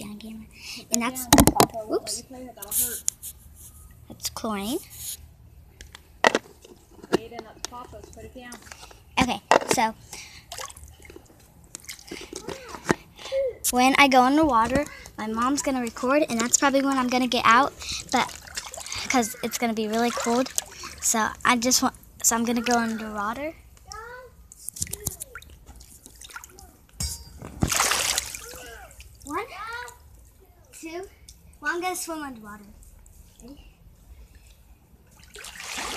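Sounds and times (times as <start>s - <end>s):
pool water splashing: 10.4s - 12.7s, 14.3s - 24.2s, 25.2s - 30.6s, 35.0s - 35.9s
girl saying ah: 12.4s - 13.8s.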